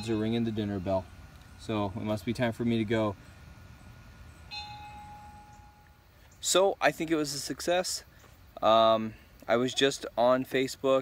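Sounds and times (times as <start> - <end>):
dinner bell ringing: 4.5 - 5.9.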